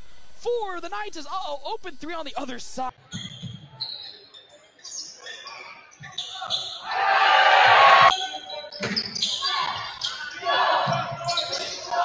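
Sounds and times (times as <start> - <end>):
crowd noise: 2.9 - 12.0.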